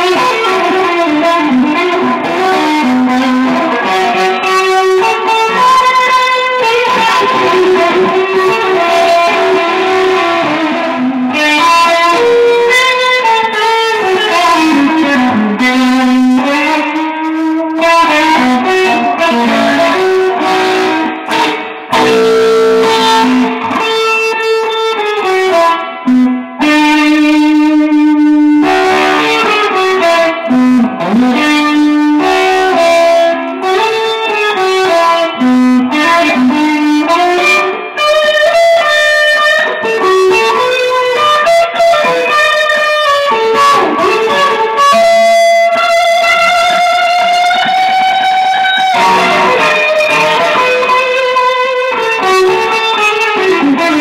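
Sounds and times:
electric guitar lead line: 0.0 - 54.0.

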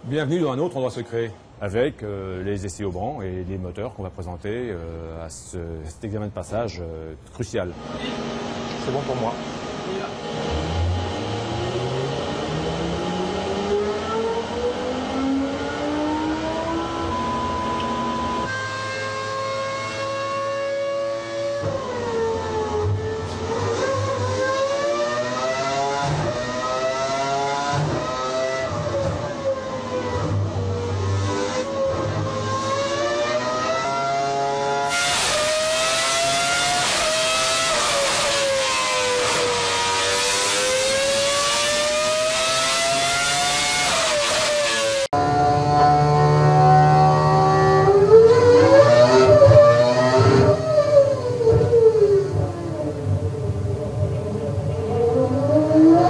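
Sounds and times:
racing engine revving: 7.6 - 56.0.

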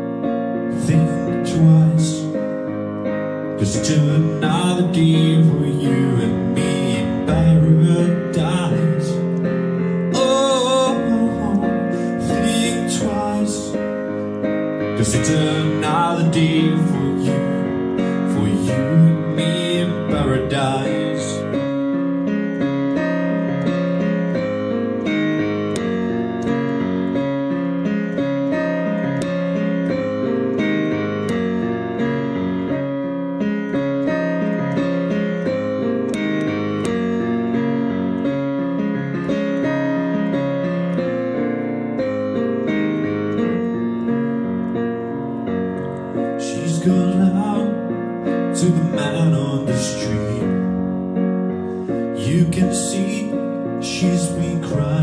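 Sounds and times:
electric piano chords and melody: 0.0 - 55.0.

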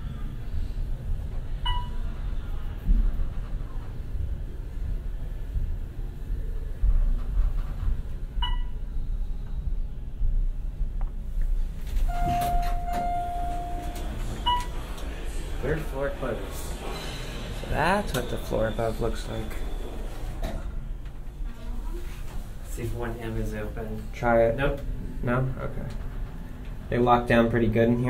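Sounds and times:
elevator rumble: 0.0 - 28.0
elevator clicks: 11.9 - 15.2
short electronic chime: 12.1 - 14.2
steady beep: 12.1 - 14.8.

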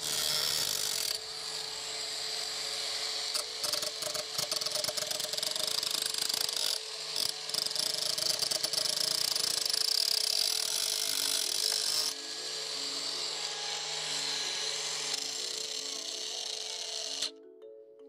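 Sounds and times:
disc grinding steel: 0.0 - 17.3
angle grinder whining: 0.0 - 17.4.

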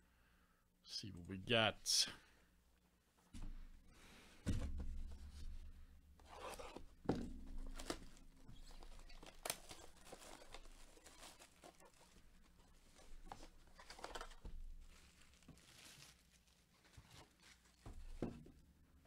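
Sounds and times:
plastic wrap crinkling and tearing: 7.6 - 18.2.

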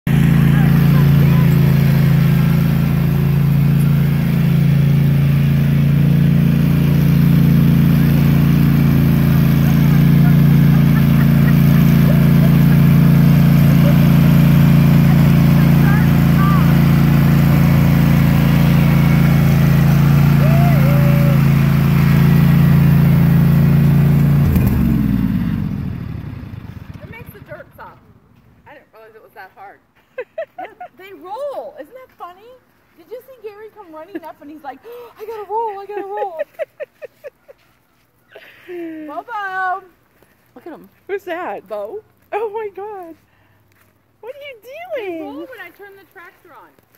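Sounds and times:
lawn tractor engine running: 0.0 - 28.4
engine winding down: 0.1 - 28.4.

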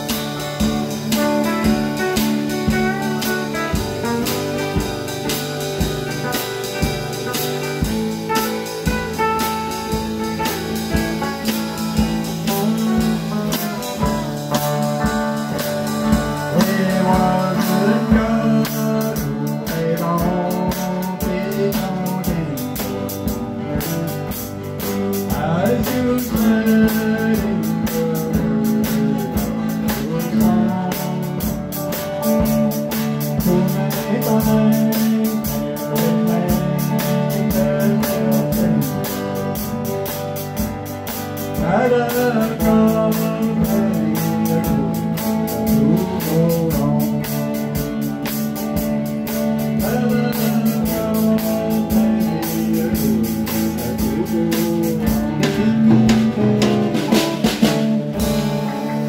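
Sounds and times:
drum kit beat: 0.0 - 59.0
lead electric guitar: 0.0 - 59.0
strummed acoustic guitar: 0.0 - 59.0.

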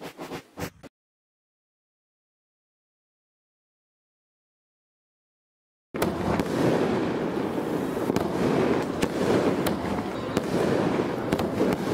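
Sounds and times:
fireworks bursting: 6.0 - 11.9.

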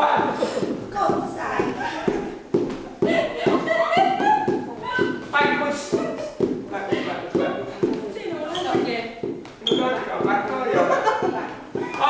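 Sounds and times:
people talking indistinctly: 0.0 - 12.0
sharp knocks or taps: 8.7 - 10.6.

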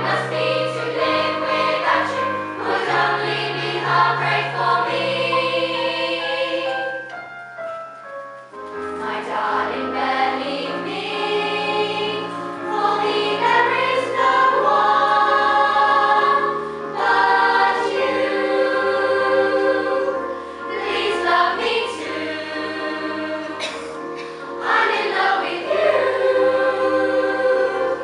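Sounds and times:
girls choir singing: 0.0 - 7.1, 8.9 - 28.0.

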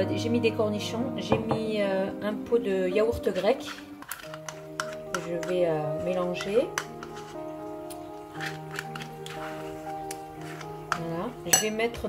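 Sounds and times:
background music with held notes: 0.0 - 12.0
spoon scraping plastic pot: 3.1 - 12.0.

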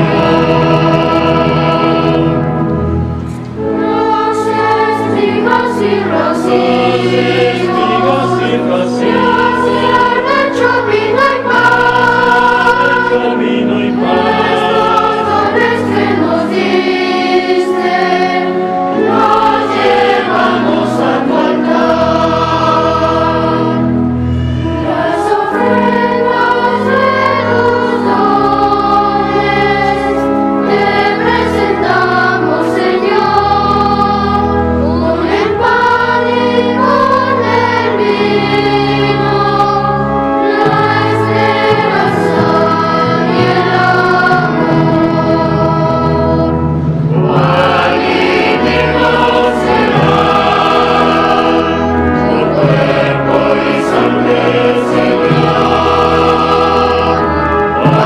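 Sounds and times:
church choir singing a hymn: 0.0 - 58.0
low accompaniment: 0.0 - 58.0.

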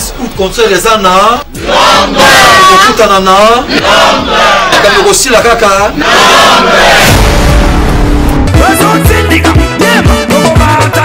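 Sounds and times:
voices chanting loudly: 1.4 - 5.2, 5.8 - 7.4.

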